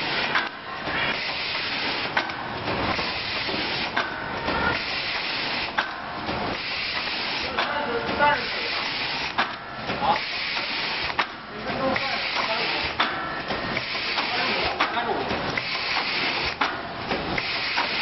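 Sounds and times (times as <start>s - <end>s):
machine hissing air: 0.0s - 14.9s, 15.5s - 18.0s
machine clicking: 0.2s - 18.0s.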